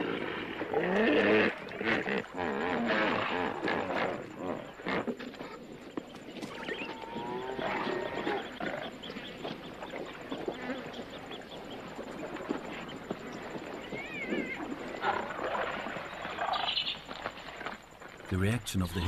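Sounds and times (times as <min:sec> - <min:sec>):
animal cries: 0:06.4 - 0:08.8, 0:13.9 - 0:15.2
wavering animal call: 0:06.4 - 0:08.9.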